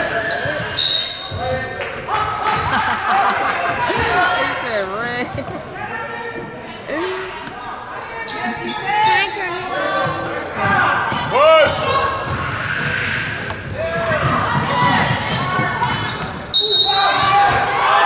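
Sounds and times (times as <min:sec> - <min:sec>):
sneaker squeaks: 0:00.0 - 0:01.6, 0:04.0 - 0:11.3, 0:12.1 - 0:17.4
spectator chatter: 0:00.0 - 0:18.0.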